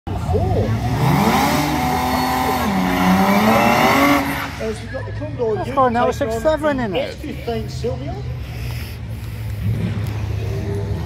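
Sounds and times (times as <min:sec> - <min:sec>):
car engines revving hard: 0:00.1 - 0:04.9, 0:08.4 - 0:11.0.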